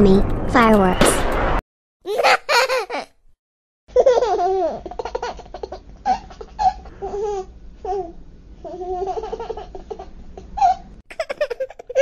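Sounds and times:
high-pitched laughter: 2.1s - 3.1s, 11.1s - 12.0s.

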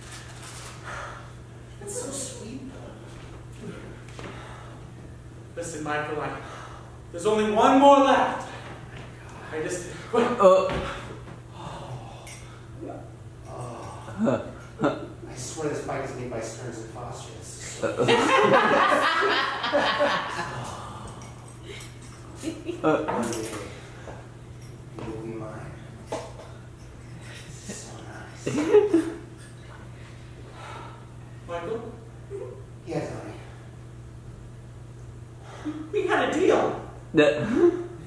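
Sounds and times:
steady low hum: 0.0s - 38.0s
soft breathing: 3.6s - 4.9s.

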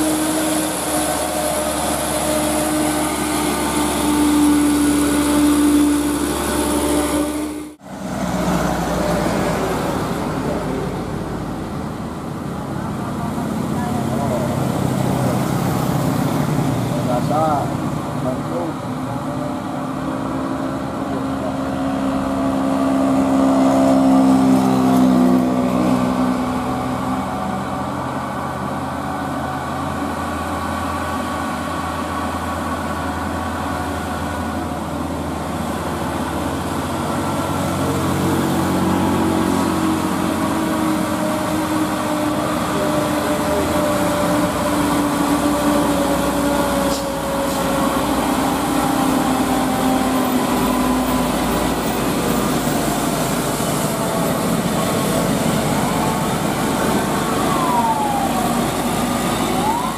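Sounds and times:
dump truck diesel engines labouring: 0.0s - 59.9s.

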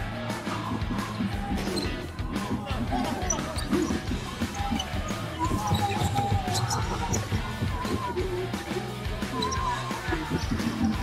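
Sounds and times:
arena background music: 0.0s - 11.0s
basketball bouncing on wooden floor: 0.8s - 8.3s.

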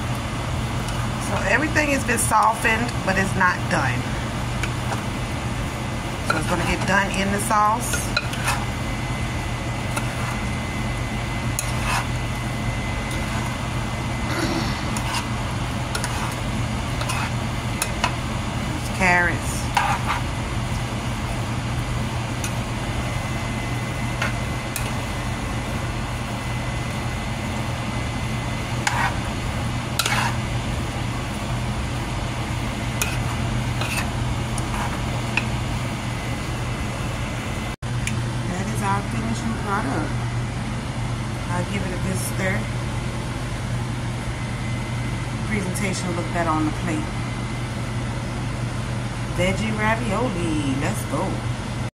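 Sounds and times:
steady low hum: 0.0s - 51.9s
utensil scraping metal pan: 11.6s - 12.1s, 15.9s - 16.4s, 30.0s - 30.4s.

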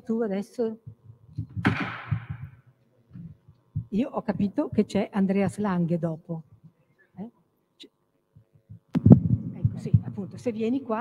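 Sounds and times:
faint steady hum: 0.0s - 11.0s
microphone handling thumps: 0.9s - 5.7s, 8.4s - 10.6s.

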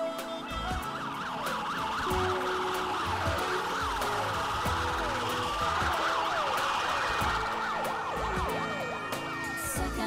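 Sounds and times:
sirens wailing: 0.0s - 10.0s.

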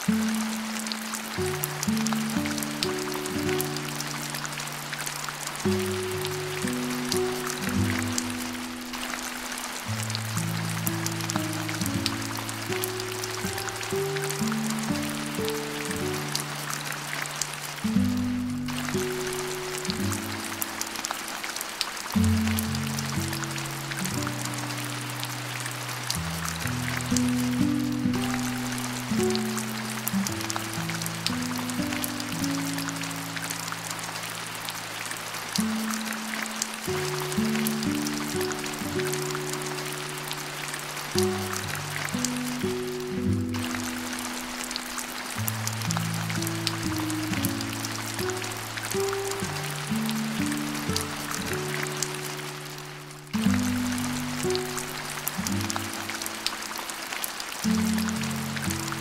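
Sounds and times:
slow low music notes: 0.0s - 56.7s, 57.5s - 59.0s
rain patter: 0.0s - 59.0s.

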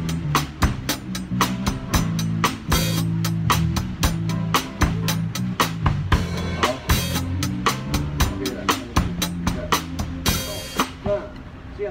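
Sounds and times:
drum kit playing: 0.0s - 11.6s
backing track with bass line: 0.0s - 11.9s.

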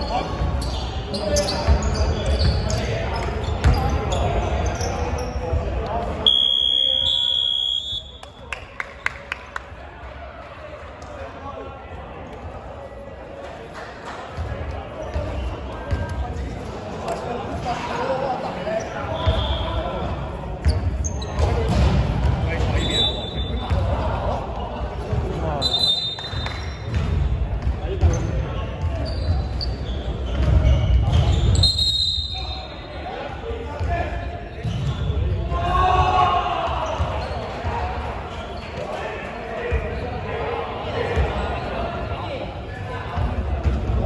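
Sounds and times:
players' voices: 0.0s - 44.0s.

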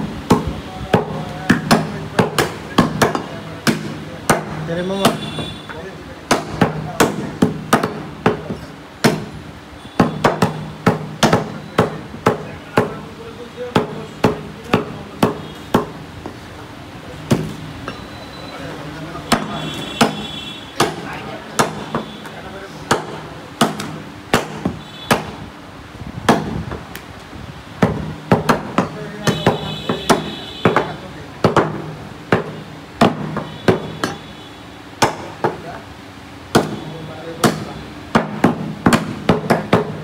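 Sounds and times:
cleavers chopping on wooden blocks: 0.0s - 9.4s, 10.0s - 16.4s, 17.2s - 18.0s, 19.1s - 25.5s, 26.2s - 27.0s, 27.8s - 34.3s, 35.0s - 35.8s, 36.5s - 40.0s.

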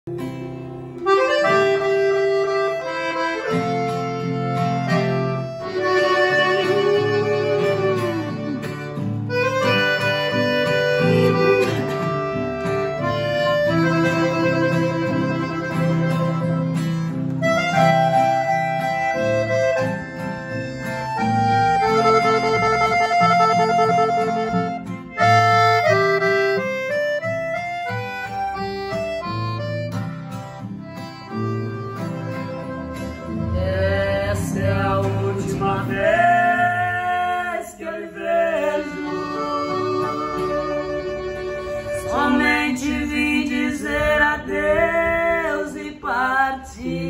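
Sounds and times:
piano accordion melody: 0.0s - 47.0s
acoustic guitar strumming: 0.1s - 47.0s.

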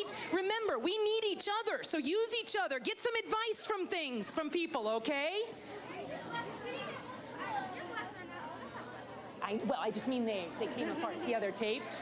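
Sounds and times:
girls chattering: 3.4s - 12.0s.

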